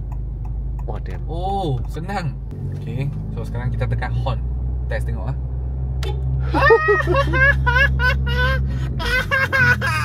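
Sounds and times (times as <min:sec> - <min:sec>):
car engine idling hum: 0:00.0 - 0:10.0
man laughing and exclaiming: 0:06.4 - 0:10.0.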